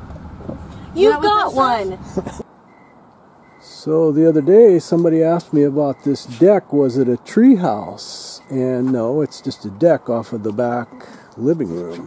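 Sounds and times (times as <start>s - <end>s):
car road noise: 0.0s - 12.0s
person laughing: 2.0s - 2.4s.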